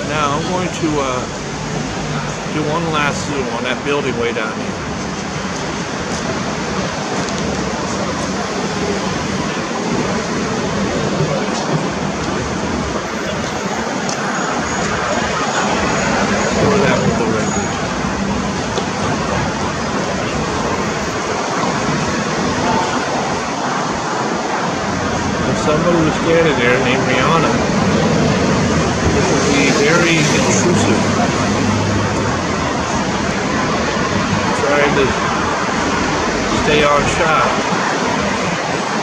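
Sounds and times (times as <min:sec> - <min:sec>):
faint voices: 0:00.0 - 0:39.0
traffic hiss and rumble: 0:00.0 - 0:39.0.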